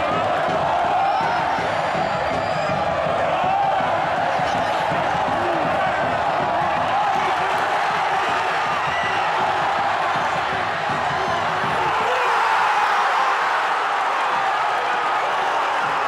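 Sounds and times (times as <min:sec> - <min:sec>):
stadium crowd shouting and chanting: 0:00.0 - 0:16.0.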